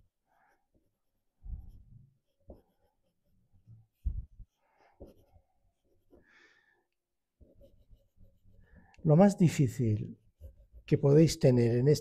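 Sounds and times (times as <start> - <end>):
pencil drawing on paper: 0.1 - 6.3, 7.3 - 9.3, 10.2 - 10.9.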